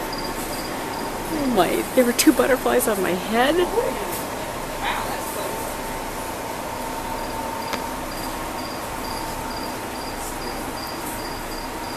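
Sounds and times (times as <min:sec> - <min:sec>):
steady hum and hiss: 0:00.0 - 0:11.9.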